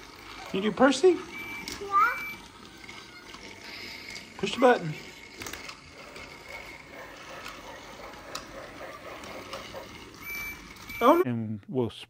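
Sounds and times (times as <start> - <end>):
toy gear motor running: 0.0 - 11.2
faint toy clicks on track: 1.4 - 10.9.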